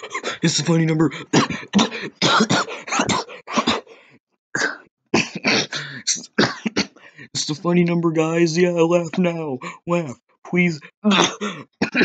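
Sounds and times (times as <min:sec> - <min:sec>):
man coughing: 0:00.0 - 0:04.0, 0:04.6 - 0:07.0, 0:10.8 - 0:12.0.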